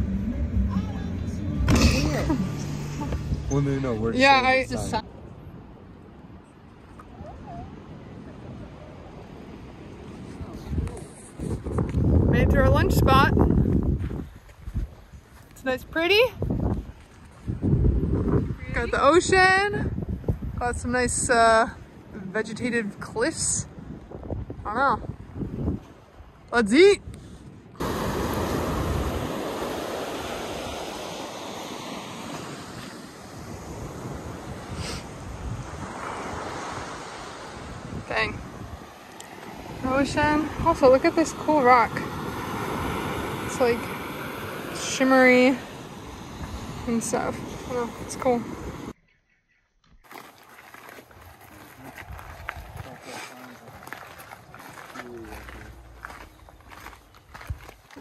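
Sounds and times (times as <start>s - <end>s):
wind buffeting microphone: 7.1s - 31.2s, 32.3s - 49.0s, 51.1s - 58.0s
surf breaking on pebble beach: 27.8s - 48.9s
footsteps crunching on gravel: 50.0s - 58.0s.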